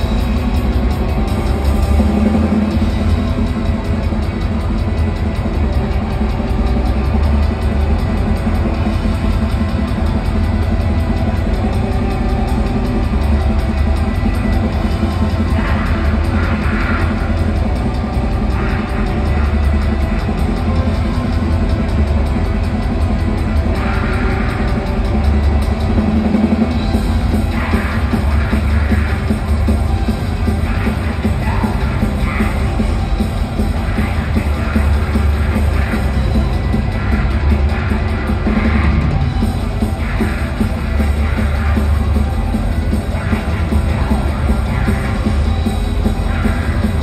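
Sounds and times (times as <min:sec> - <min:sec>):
fast drumming with cymbals: 0:00.0 - 0:47.0
live rock band playing: 0:00.0 - 0:47.0.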